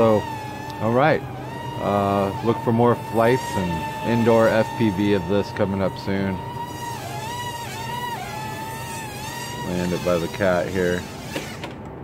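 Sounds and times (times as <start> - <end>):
quadcopter motors whining: 0.0 - 12.0.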